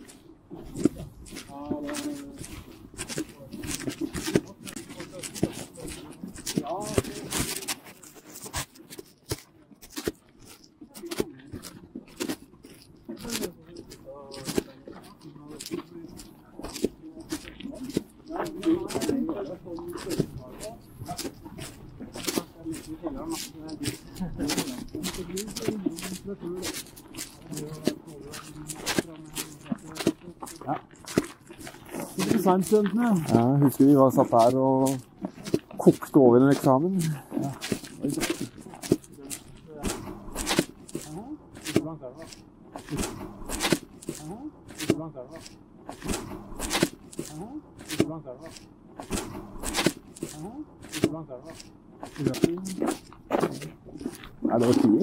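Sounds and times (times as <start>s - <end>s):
footsteps crunching on snow: 0.0s - 55.0s
low indistinct talk: 13.0s - 31.0s.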